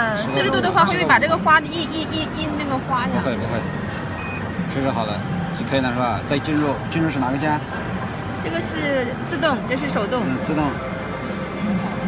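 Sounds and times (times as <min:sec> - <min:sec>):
background crowd chatter: 0:00.0 - 0:12.0
short high beep: 0:04.2 - 0:04.4.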